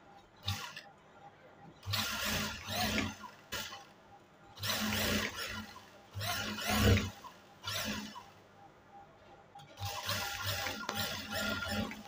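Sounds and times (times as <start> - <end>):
sewing machine stitching: 0.4 - 0.8, 1.8 - 3.9, 4.6 - 8.4, 9.6 - 12.0.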